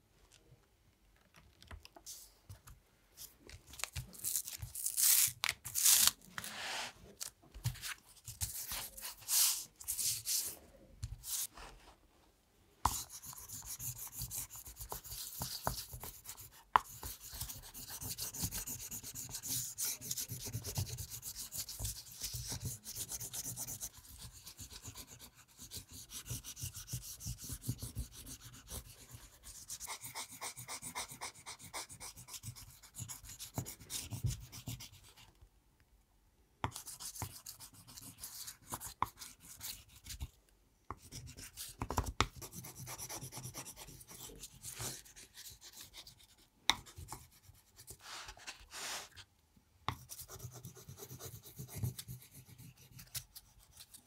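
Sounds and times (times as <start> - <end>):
scratchy rubbing on paper: 12.9 - 35.2, 41.0 - 49.2, 49.9 - 54.0
rubbing strokes on paper: 47.0 - 49.2.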